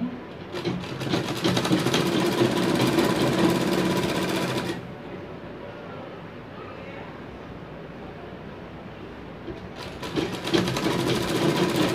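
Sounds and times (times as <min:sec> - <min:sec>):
sewing machine running: 0:00.5 - 0:04.9, 0:09.8 - 0:11.9.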